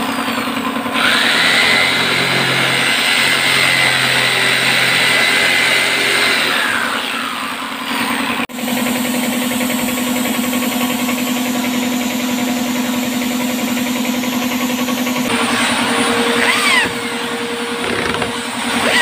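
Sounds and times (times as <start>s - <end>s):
electric jigsaw cutting plywood: 0.0s - 19.0s
pulsing machine hum: 0.0s - 19.0s.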